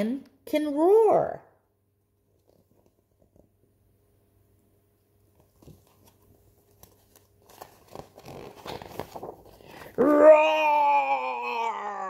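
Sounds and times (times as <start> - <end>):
book pages rustling: 5.2 - 10.2
woman imitating lion roar: 10.0 - 12.0.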